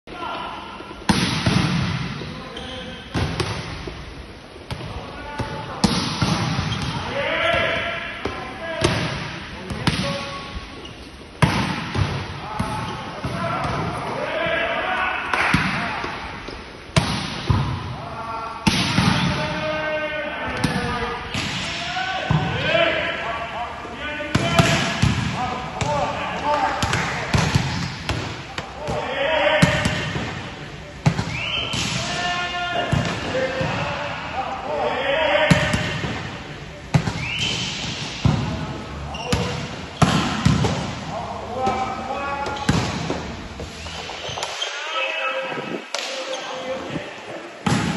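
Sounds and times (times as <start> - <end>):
balls rebounding in reverberant gym: 0.3 - 14.6, 15.3 - 23.2, 24.2 - 34.6, 35.2 - 44.7, 47.6 - 47.9
volleyballs smacked hard: 1.1 - 2.2, 16.9 - 17.8, 39.3 - 41.0.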